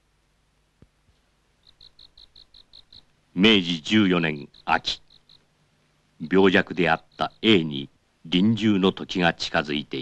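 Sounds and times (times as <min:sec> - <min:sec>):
cricket chirping: 0:01.6 - 0:05.6, 0:06.2 - 0:08.9.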